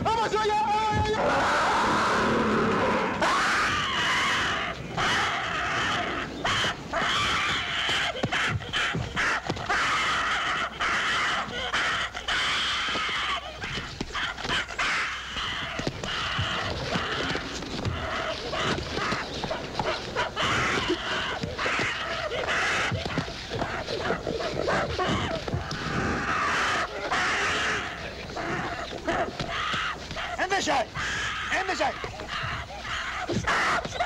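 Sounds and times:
men shouting: 0.0s - 5.9s
gorilla screaming: 0.0s - 34.0s.

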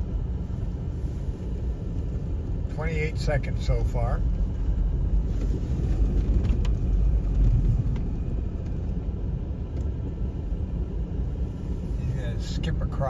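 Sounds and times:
car engine rumble and road noise: 0.0s - 13.0s.

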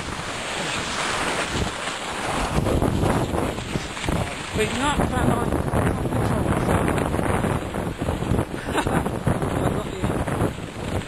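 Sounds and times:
clothing sliding over snow: 0.0s - 4.7s
wind buffeting microphone: 0.0s - 11.0s.

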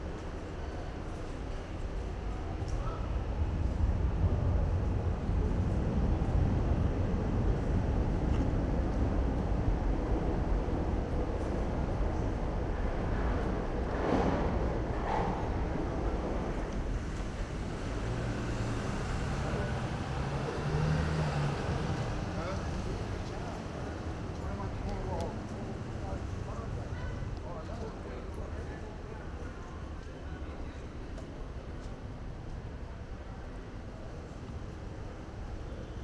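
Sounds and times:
train low rumble: 0.0s - 36.0s
vehicles passing: 3.0s - 36.0s
people's voices: 19.1s - 34.7s.

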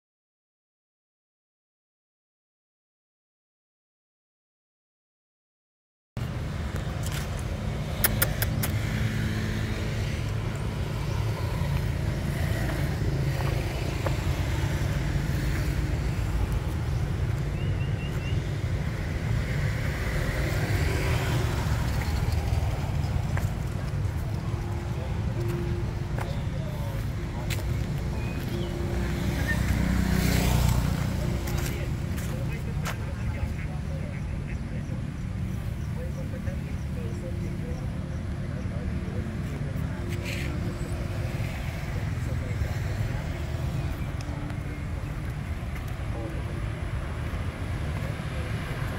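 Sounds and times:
vehicle passing: 6.2s - 34.5s
low traffic rumble: 6.2s - 48.9s
sharp clicks: 7.9s - 8.8s.

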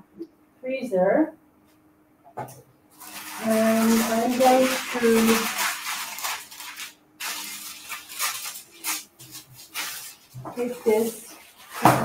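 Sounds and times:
plastic sheet rustling and crinkling: 2.9s - 12.0s.

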